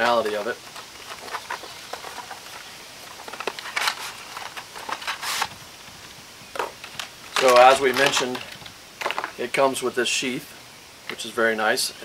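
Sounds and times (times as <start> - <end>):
packaging clicks and rustles: 0.0 - 5.6, 6.6 - 9.4.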